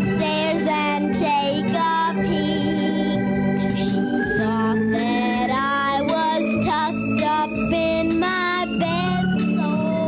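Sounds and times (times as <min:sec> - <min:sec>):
electric organ chords: 0:00.0 - 0:10.0
girl singing into microphone: 0:00.0 - 0:10.0.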